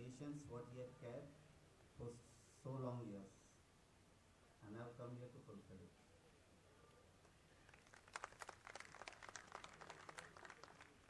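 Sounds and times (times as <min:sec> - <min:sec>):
audience handclapping: 0:07.7 - 0:11.0.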